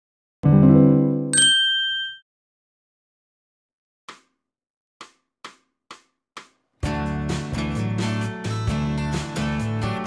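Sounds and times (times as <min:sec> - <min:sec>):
bright chime-like ding: 0:01.4 - 0:02.2.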